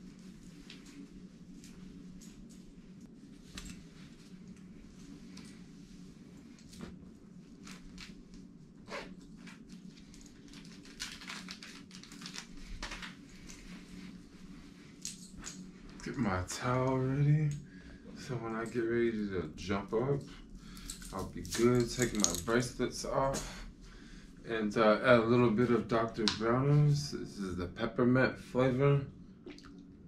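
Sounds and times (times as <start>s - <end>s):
clothing rustling: 0.0s - 23.9s
low room hum: 0.0s - 30.0s.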